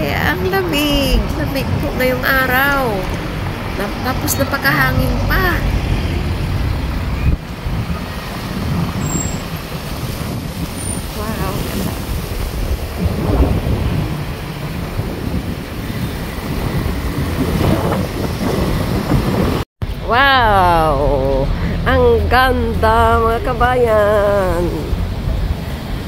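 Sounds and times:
wind buffeting microphone: 0.0s - 20.1s.

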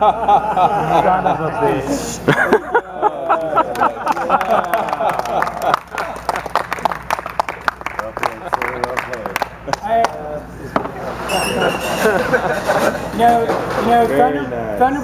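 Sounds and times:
voices talking: 7.7s - 15.0s.

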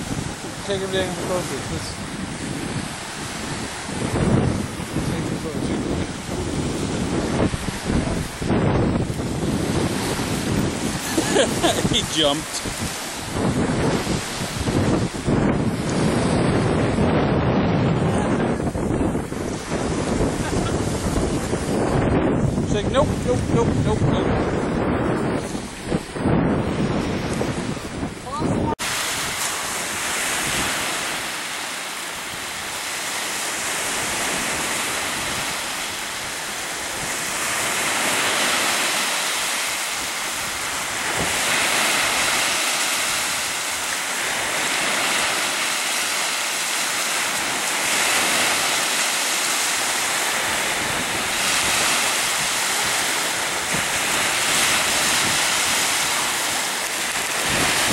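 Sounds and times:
surf hissing: 0.0s - 17.0s, 17.9s - 57.9s
wind buffeting microphone: 0.0s - 57.9s.

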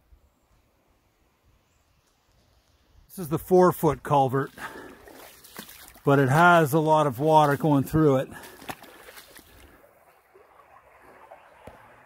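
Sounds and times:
creek water rushing through metal culvert: 3.2s - 12.0s.

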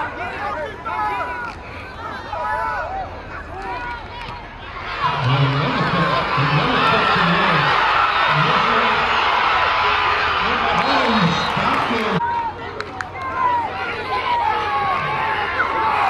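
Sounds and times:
crowd cheering and yelling: 0.0s - 16.0s.

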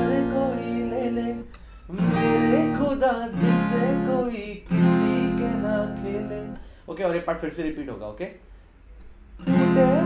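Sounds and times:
acoustic guitar strumming: 0.0s - 6.7s, 9.4s - 10.0s.

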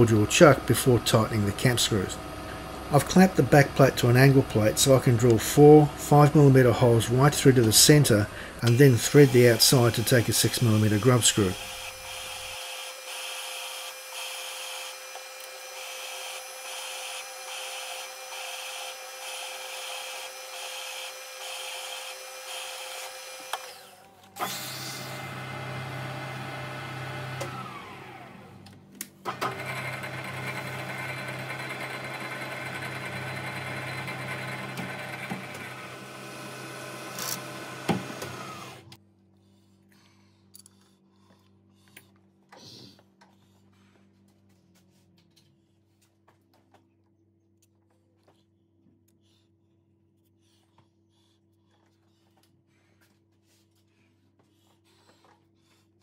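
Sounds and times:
milling machine spindle drilling metal: 0.2s - 24.8s.

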